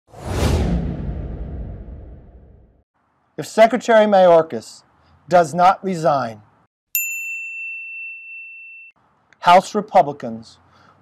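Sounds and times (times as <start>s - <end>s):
cinematic whoosh: 0.1s - 2.8s
deep rumble: 0.2s - 2.8s.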